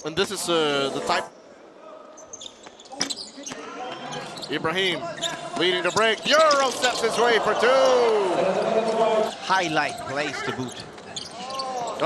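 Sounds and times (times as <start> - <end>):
indoor crowd noise: 0.0 - 12.0.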